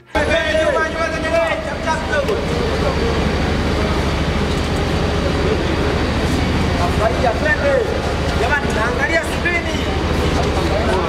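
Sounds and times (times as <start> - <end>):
faint indistinct voices: 0.0 - 11.0
loud mechanical rumble: 0.0 - 11.0.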